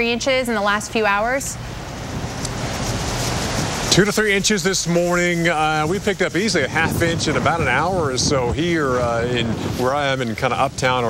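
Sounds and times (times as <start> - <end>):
wind on microphone: 1.6 - 11.0
man's voice: 3.9 - 11.0.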